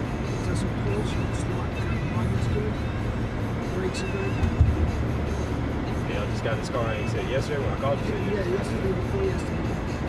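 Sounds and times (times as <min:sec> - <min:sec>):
car road and engine rumble: 0:00.0 - 0:10.0
music playing: 0:00.0 - 0:10.0.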